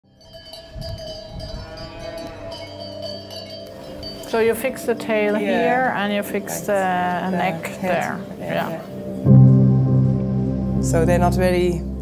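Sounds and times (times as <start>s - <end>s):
cowbells ringing and clanking: 0.1s - 7.8s
low thuds: 9.3s - 12.0s.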